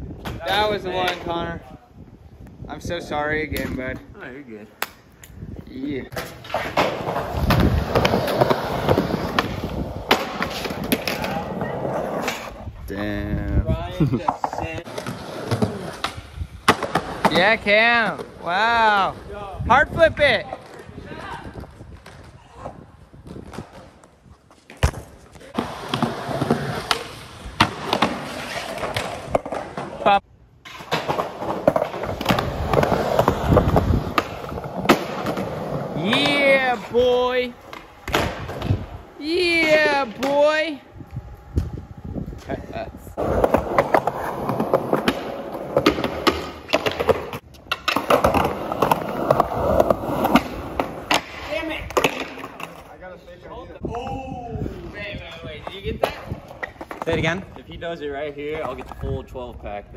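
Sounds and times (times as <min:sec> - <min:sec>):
skateboard wheels rolling on concrete: 0:00.0 - 0:59.9
skateboard clacks and impacts: 0:06.1 - 0:11.4, 0:30.7 - 0:36.8, 0:37.6 - 0:38.9, 0:43.2 - 0:52.8.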